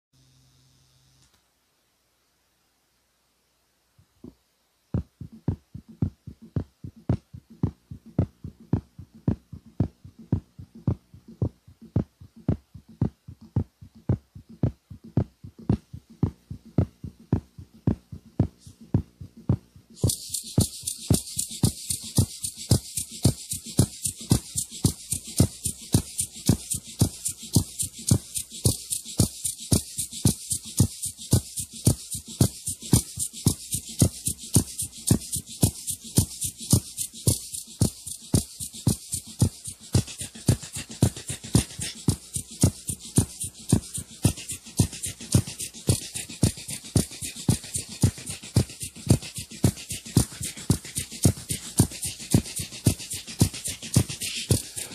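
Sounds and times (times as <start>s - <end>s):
hi-hat ticks: 5.0s - 54.9s
low drum beat: 5.0s - 54.9s
fast high rattling rhythm: 5.2s - 54.9s.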